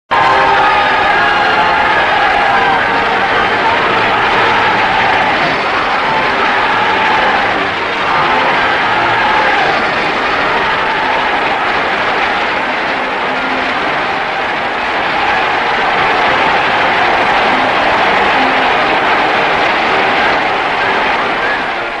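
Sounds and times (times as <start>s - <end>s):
audience applause: 0.1s - 22.0s
faint crowd voices: 0.1s - 22.0s.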